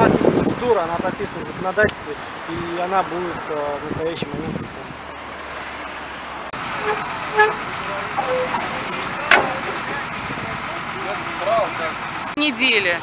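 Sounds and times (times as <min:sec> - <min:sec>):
cars going by: 0:00.0 - 0:13.0
car horn toot: 0:06.8 - 0:08.8.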